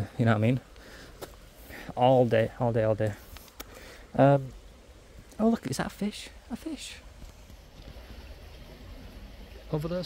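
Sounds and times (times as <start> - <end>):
stream trickling: 3.3 - 10.0.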